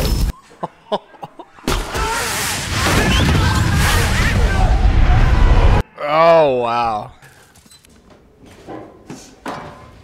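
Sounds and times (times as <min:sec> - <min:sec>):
crashing action sound effects: 0:01.7 - 0:05.8.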